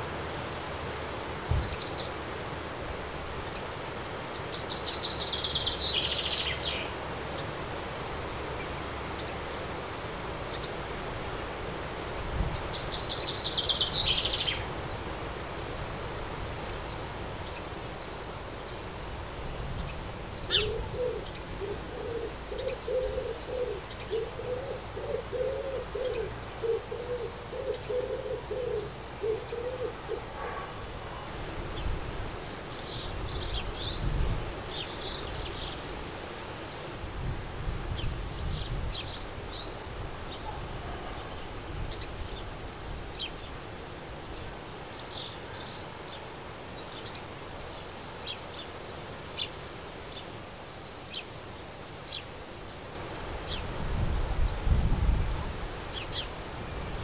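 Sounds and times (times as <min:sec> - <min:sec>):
small birds chirping: 0:03.5 - 0:07.6, 0:08.5 - 0:11.2, 0:12.1 - 0:32.0, 0:32.6 - 0:35.9, 0:44.2 - 0:53.7
pigeon cooing: 0:20.5 - 0:31.3.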